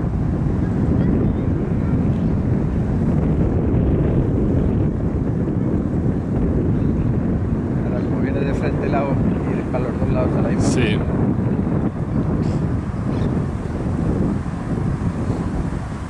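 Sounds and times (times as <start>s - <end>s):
wind buffeting microphone: 0.0s - 16.0s
man's voice: 7.8s - 11.2s.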